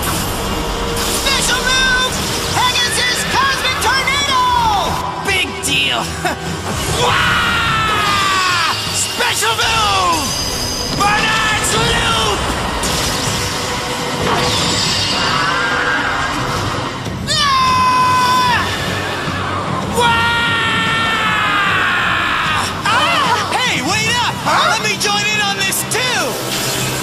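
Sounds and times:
dramatic background music: 0.0 - 27.0
high-pitched cartoon battle cry: 6.9 - 8.9, 17.3 - 23.5.

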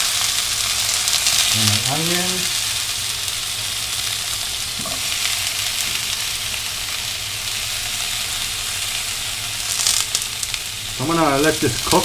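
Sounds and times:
sharp crackles of onion in pan: 0.0 - 12.0
tomatoes sizzling in hot oil: 0.0 - 12.0.

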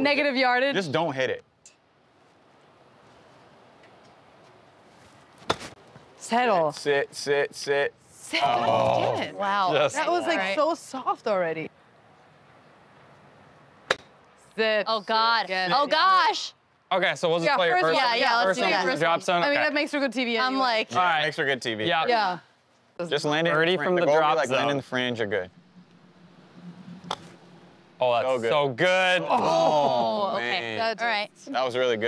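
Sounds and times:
golf club striking ball: 13.9 - 14.2, 25.6 - 28.0.

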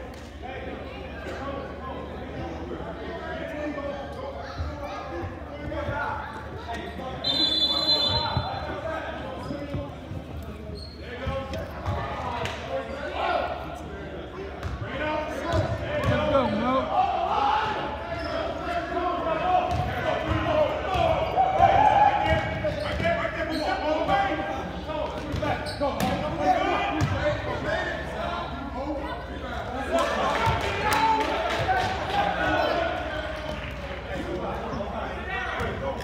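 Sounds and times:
people talking and calling out: 0.0 - 36.0
basketball bouncing on court: 19.7 - 21.2.

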